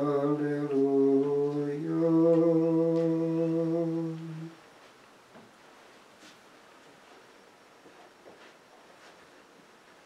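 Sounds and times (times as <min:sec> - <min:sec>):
man chanting unaccompanied: 0:00.0 - 0:04.6.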